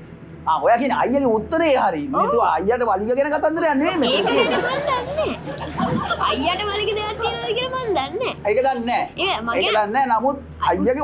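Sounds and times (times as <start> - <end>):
audience laughter: 4.0 - 7.1.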